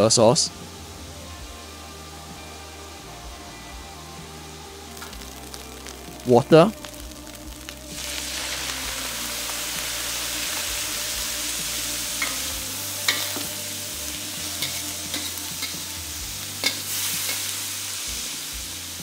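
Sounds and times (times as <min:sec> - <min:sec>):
meat sizzling in a wok: 0:00.0 - 0:19.0
spatula scraping wok: 0:09.6 - 0:18.0
spatula clinking on wok: 0:13.1 - 0:13.5, 0:14.6 - 0:15.9, 0:16.6 - 0:17.5.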